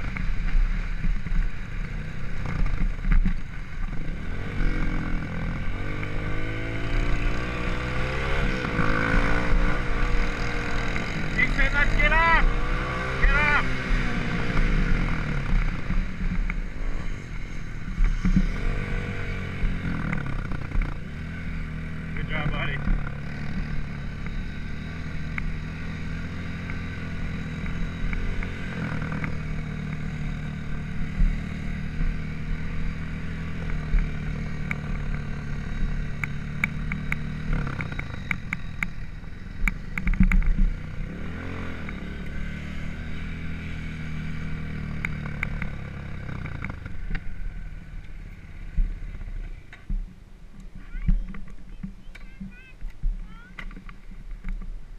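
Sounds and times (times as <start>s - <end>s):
dirt bike engine revving: 0.0s - 49.7s
sharp ticks and clatter: 33.6s - 40.8s.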